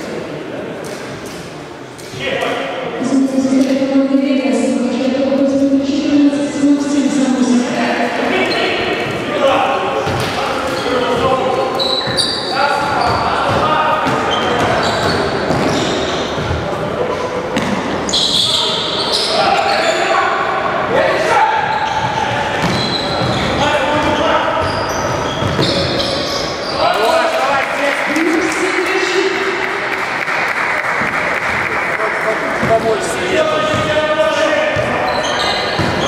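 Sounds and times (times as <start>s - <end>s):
indistinct voices: 2.1s - 36.0s
basketball bouncing on wooden court: 12.8s - 16.6s, 22.0s - 26.0s, 33.7s - 34.0s, 35.6s - 36.0s.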